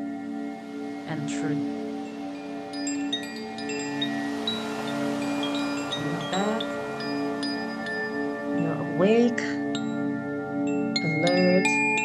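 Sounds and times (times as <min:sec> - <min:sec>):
rising sweep: 0:00.0 - 0:10.0
sustained low drone: 0:00.0 - 0:11.1
wind chimes tinkling: 0:01.7 - 0:12.0.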